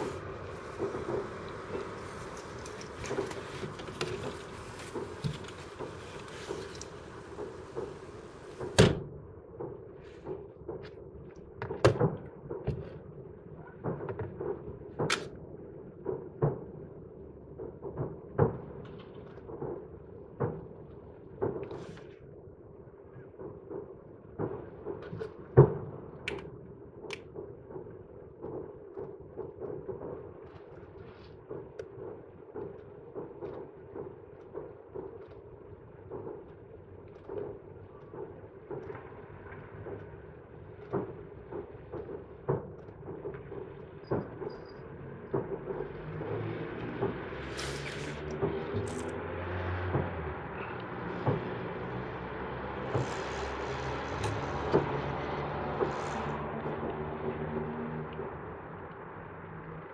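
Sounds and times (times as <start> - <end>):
steady low noise: 0.0 - 11.5
distant fireworks booming: 0.0 - 59.9.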